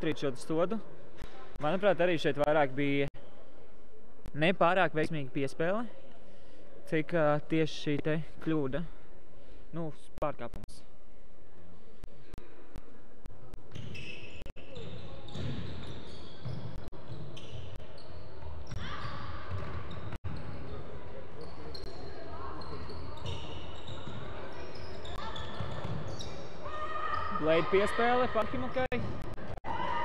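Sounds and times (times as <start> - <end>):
sneakers squeaking: 13.5 - 29.6.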